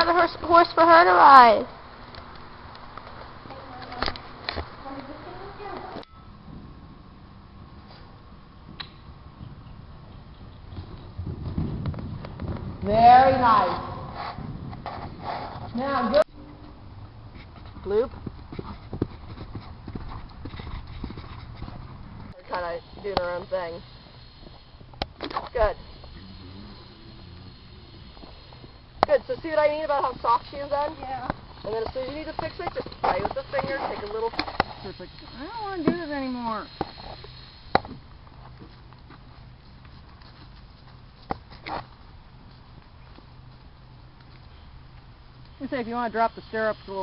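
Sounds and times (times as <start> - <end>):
horse hooves thudding on sand: 8.6 - 16.2, 17.3 - 44.5.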